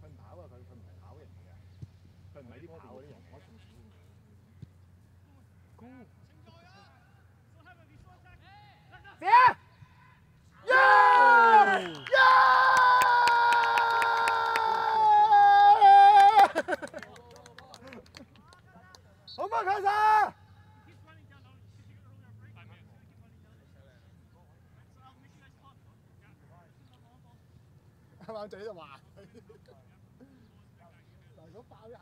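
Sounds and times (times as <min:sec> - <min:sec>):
faint distant voices: 0:00.0 - 0:11.0, 0:17.0 - 0:32.0
man shouting: 0:08.6 - 0:09.6, 0:10.6 - 0:16.5, 0:19.4 - 0:20.4.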